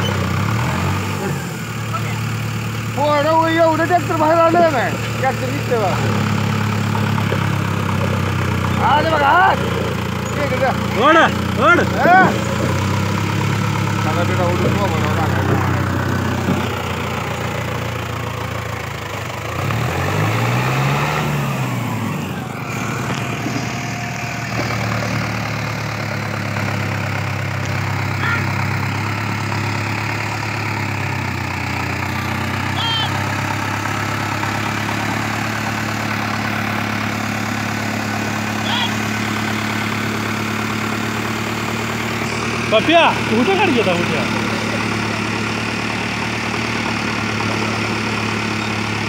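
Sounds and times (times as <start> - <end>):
tractor diesel engine labouring: 0.0 - 49.0.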